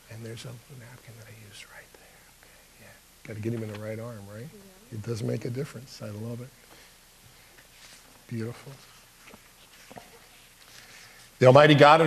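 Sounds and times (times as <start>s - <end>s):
whispering: 0.7s - 3.0s.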